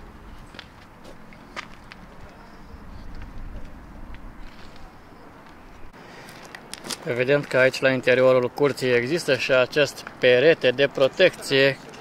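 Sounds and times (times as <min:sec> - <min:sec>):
footsteps on stone path: 0:00.0 - 0:07.8.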